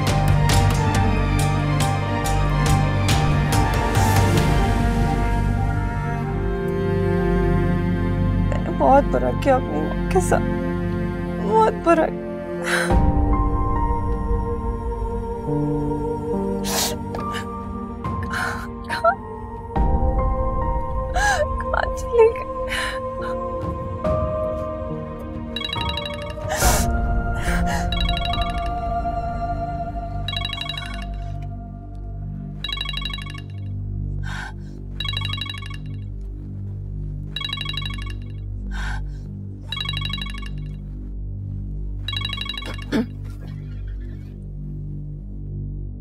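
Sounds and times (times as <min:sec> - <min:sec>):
background music: 0:00.0 - 0:46.0
woman sobbing: 0:18.2 - 0:19.3, 0:21.1 - 0:23.4
mobile phone ringtone trilling: 0:25.6 - 0:26.6, 0:27.9 - 0:28.7, 0:30.3 - 0:31.4, 0:32.6 - 0:33.7, 0:35.0 - 0:36.1, 0:37.4 - 0:38.4, 0:39.7 - 0:40.8, 0:42.1 - 0:43.1.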